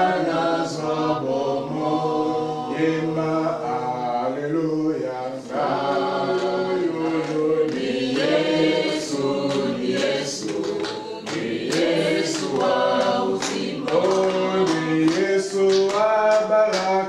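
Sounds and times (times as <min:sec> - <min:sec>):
congregation singing a hymn: 0:00.0 - 0:17.0.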